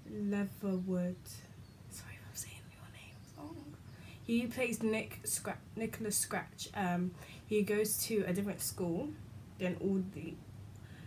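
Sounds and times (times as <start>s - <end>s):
woman whispering: 1.9s - 3.8s.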